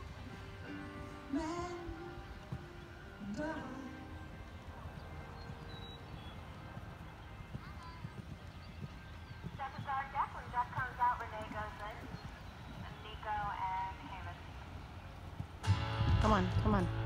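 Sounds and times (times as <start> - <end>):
faint distant voices: 0.0 - 15.2
low rumble: 15.6 - 17.0.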